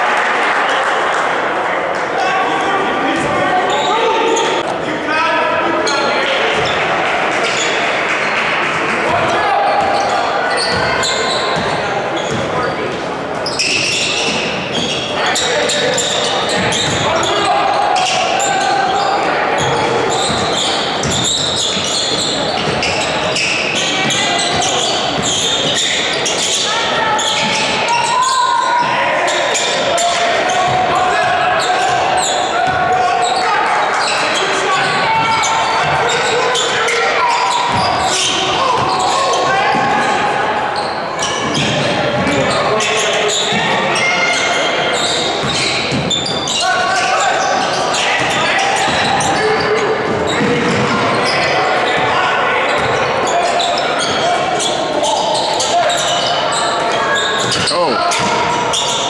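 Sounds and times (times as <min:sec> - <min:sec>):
people shouting: 0:15.1 - 0:25.4, 0:26.3 - 0:40.7.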